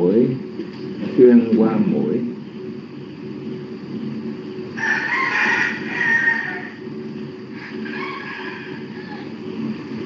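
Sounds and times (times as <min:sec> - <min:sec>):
steady low hum: 0:00.0 - 0:10.0
rooster crowing: 0:04.7 - 0:09.7.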